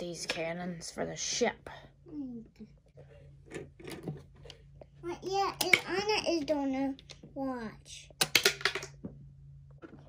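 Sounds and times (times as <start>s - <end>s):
child speaking and babbling: 2.0s - 2.7s, 5.0s - 8.1s.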